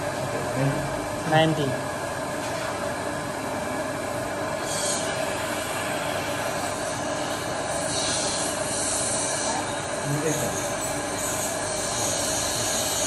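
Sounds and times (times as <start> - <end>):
steady mechanical drone: 0.0 - 13.0.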